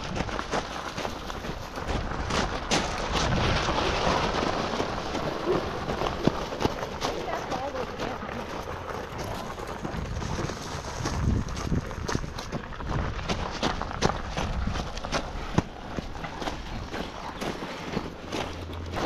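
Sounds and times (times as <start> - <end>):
bike tyres crunching gravel: 0.0 - 19.0.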